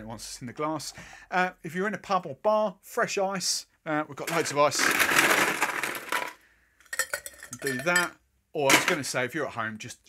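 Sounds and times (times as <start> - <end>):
ice clinking into glass: 6.9 - 8.1.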